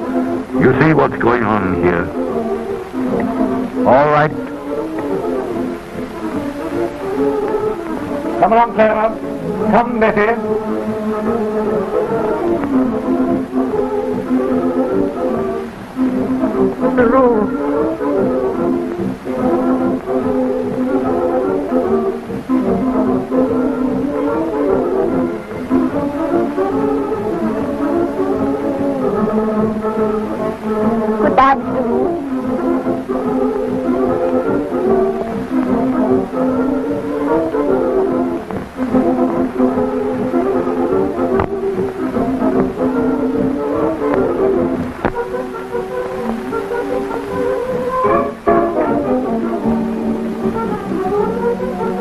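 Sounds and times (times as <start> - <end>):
slow film score music: 0.0 - 52.0.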